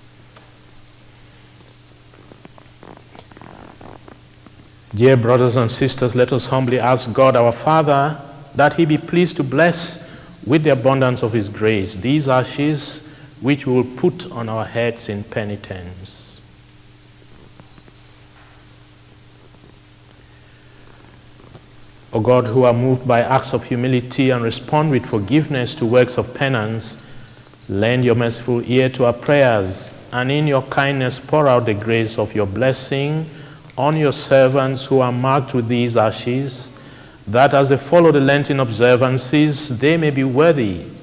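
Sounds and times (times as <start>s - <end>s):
faint hiss: 0.0s - 41.0s
steady low hum: 0.0s - 41.0s
faint rustling: 0.9s - 5.0s.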